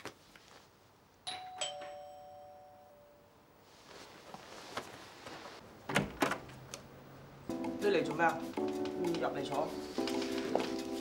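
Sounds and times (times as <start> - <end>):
doorbell ding-dong chime: 1.3 - 3.2.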